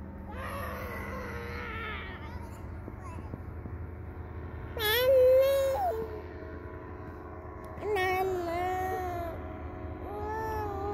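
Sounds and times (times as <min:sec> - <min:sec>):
steady low rumble: 0:00.0 - 0:10.9
young child wailing: 0:00.3 - 0:03.2, 0:10.1 - 0:10.9.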